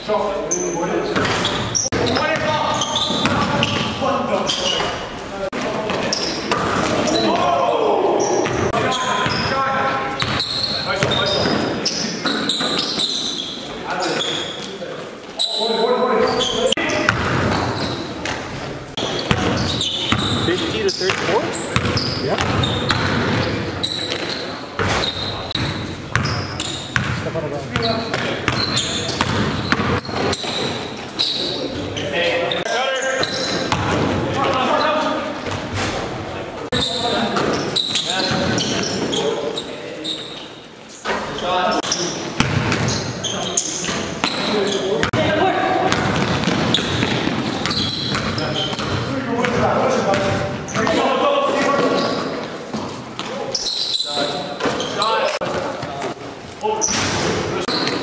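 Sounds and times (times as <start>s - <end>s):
basketball bouncing on court floor: 1.2s - 4.0s, 8.4s - 9.6s, 10.2s - 13.1s, 17.0s - 30.7s, 33.2s - 34.3s, 41.8s - 43.1s, 43.8s - 51.0s
players shouting: 7.0s - 9.0s.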